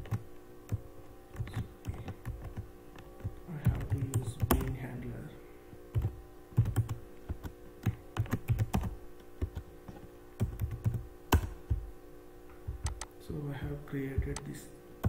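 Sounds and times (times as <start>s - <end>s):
computer keyboard typing: 0.0s - 4.9s, 5.9s - 11.9s, 12.7s - 14.5s
faint steady hum: 0.0s - 15.0s.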